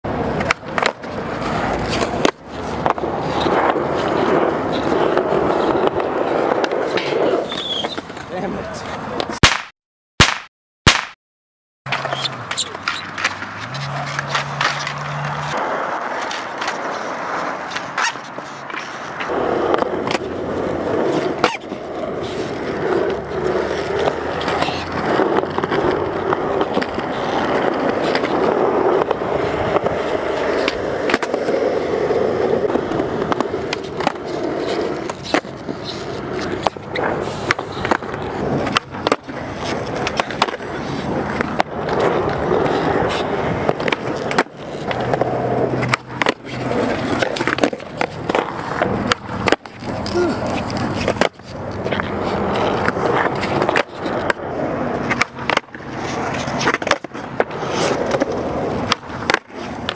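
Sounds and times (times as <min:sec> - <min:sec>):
skateboard wheels rolling on concrete: 0:00.0 - 0:09.6, 0:11.9 - 0:59.9
skateboard clacks: 0:00.1 - 0:11.1, 0:11.9 - 0:59.9
skateboard tail pops: 0:09.2 - 0:11.2, 0:29.0 - 0:31.5, 0:41.3 - 0:54.4, 0:55.0 - 0:59.9.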